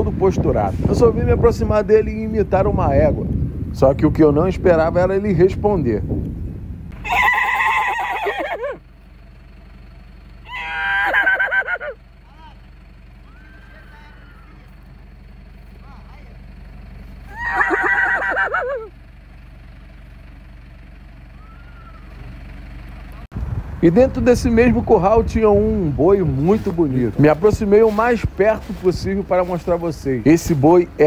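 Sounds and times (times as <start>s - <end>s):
horse neighing: 7.0s - 8.8s, 10.5s - 12.0s, 13.2s - 14.7s, 17.3s - 18.9s
man imitating horse whinny: 7.0s - 8.8s, 10.5s - 12.0s, 17.3s - 18.9s.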